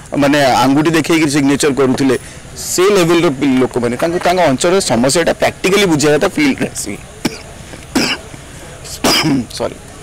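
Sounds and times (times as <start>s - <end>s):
person coughing: 6.6s - 8.3s, 9.0s - 9.4s.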